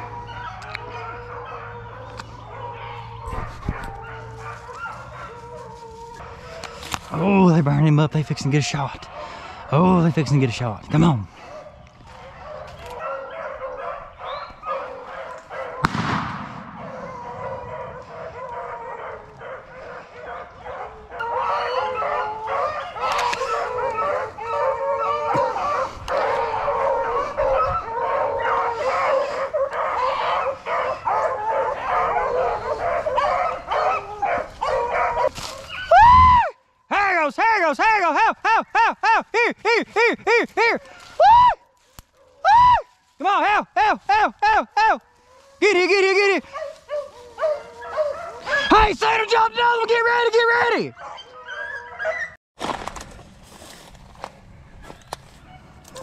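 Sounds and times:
dog barking close by: 0:00.0 - 0:05.4, 0:11.4 - 0:15.9, 0:16.8 - 0:35.6, 0:46.4 - 0:48.7
hounds baying: 0:00.0 - 0:15.9, 0:16.6 - 0:36.1, 0:39.5 - 0:42.7, 0:44.6 - 0:49.8, 0:50.4 - 0:52.4, 0:55.4 - 0:56.0
sharp bang: 0:15.8 - 0:17.2.

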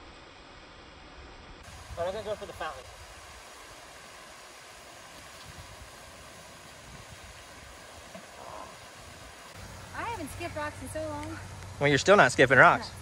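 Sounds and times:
steady outdoor hiss: 0:00.0 - 0:13.0.

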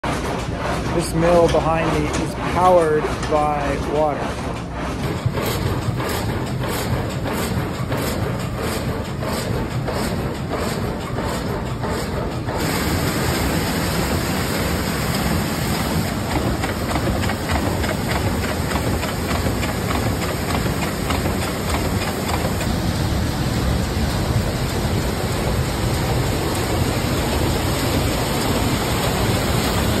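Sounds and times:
sawmill machinery clattering: 0:00.0 - 0:30.0
hissy rushing noise: 0:12.6 - 0:30.0.

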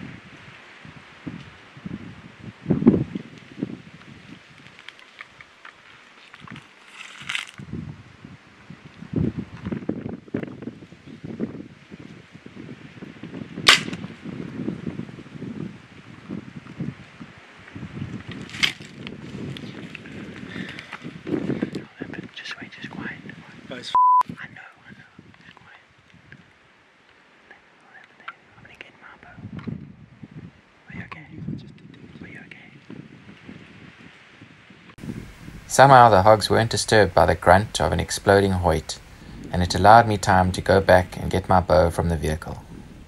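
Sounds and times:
bow string snapping: 0:13.7 - 0:14.0.

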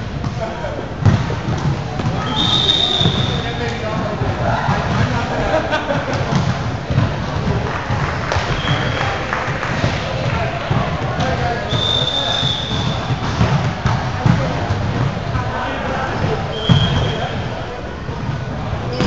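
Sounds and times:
din of voices in a gym: 0:00.0 - 0:19.0
volleyball thuds: 0:00.2 - 0:17.3.

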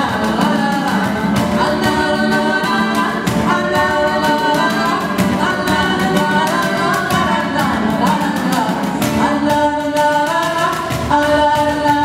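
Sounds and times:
bass guitar: 0:00.0 - 0:09.8
acoustic guitar: 0:00.0 - 0:12.0
cajon beat: 0:00.0 - 0:12.0
person singing into microphone: 0:00.0 - 0:12.0.

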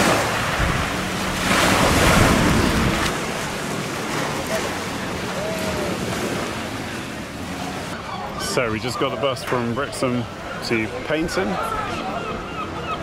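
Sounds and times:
waves washing on shingle: 0:00.0 - 0:08.0.

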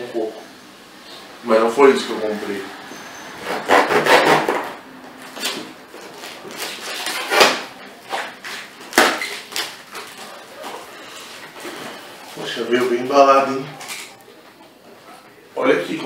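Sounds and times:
knife cutting cardboard box: 0:03.4 - 0:04.7.

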